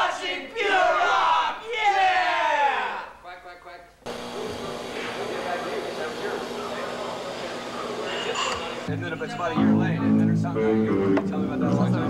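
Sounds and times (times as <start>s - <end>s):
room noise: 0.0s - 9.6s
indistinct voices: 4.1s - 12.0s.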